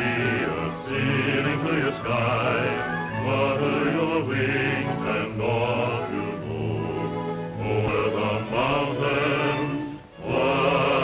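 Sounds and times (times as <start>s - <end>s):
choir singing long held notes: 0.0s - 11.0s
low musical accompaniment: 0.0s - 11.0s.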